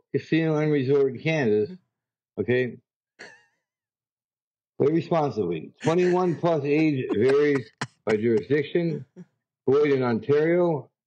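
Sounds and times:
man speaking: 0.2s - 1.8s, 4.8s - 10.9s.

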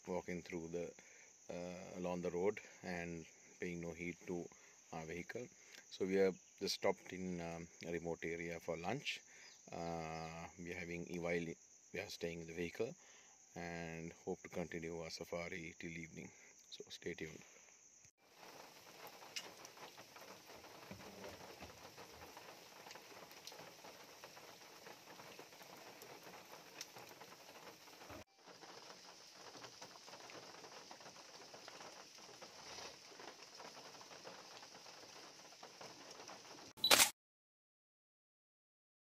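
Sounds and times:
rain pattering: 18.2s - 36.7s
short sharp click: 36.8s - 37.1s.

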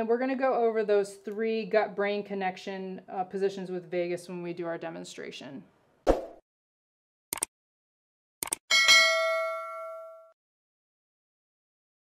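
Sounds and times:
bright bell chime: 8.7s - 10.4s.

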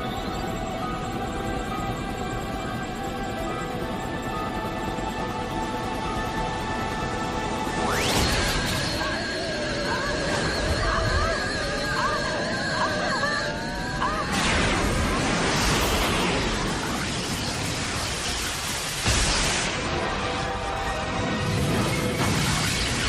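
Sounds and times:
tense orchestral score: 0.0s - 23.0s
machinery powering up warble: 7.1s - 23.0s.

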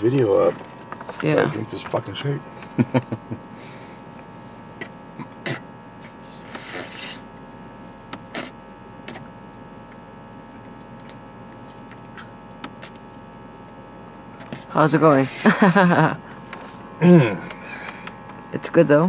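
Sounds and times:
car cabin hum: 0.0s - 3.3s
man gulping and swallowing: 4.8s - 5.7s.

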